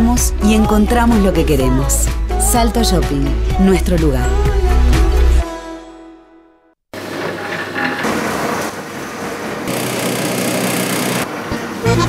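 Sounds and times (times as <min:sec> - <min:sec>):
pasta machine whirring: 0:09.4 - 0:12.0.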